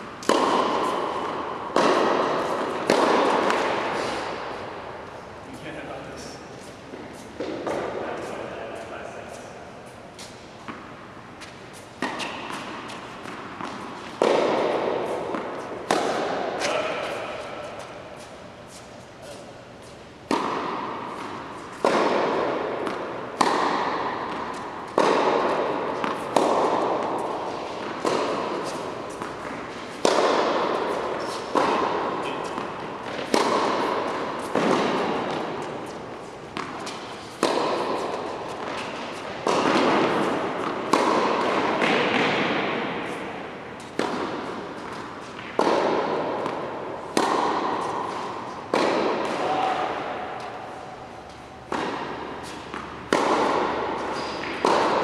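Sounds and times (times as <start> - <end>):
tennis balls bouncing: 0.0 - 5.7, 6.6 - 55.0
tennis balls struck by rackets: 0.0 - 5.7, 6.9 - 55.0.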